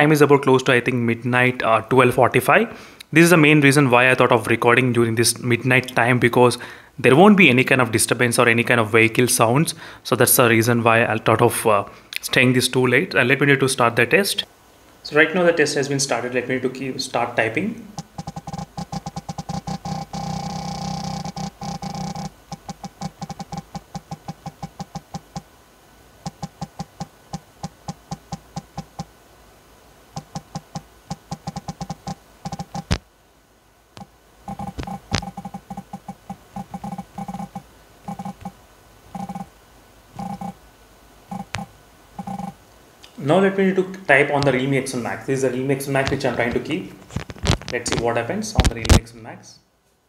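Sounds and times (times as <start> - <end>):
phone vibration buzzes: 17.9 - 25.5, 26.2 - 29.1, 30.1 - 33.0, 34.0 - 40.6, 41.3 - 42.6
sharp clicks: 18.0 - 20.6.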